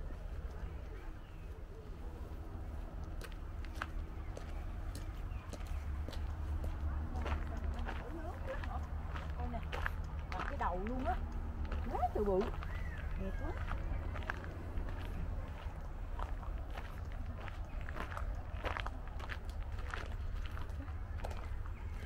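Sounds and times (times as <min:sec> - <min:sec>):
low rumble: 0:00.0 - 0:22.0
people talking: 0:06.7 - 0:14.4.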